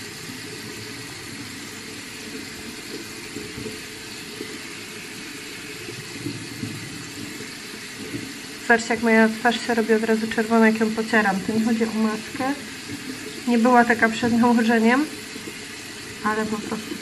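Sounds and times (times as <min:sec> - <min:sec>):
water running from tap: 0:00.0 - 0:17.0.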